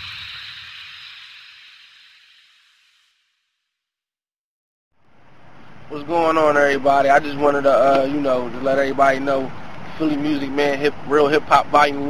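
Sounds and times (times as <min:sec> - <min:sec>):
explosion hissing rumble: 0:00.0 - 0:03.0.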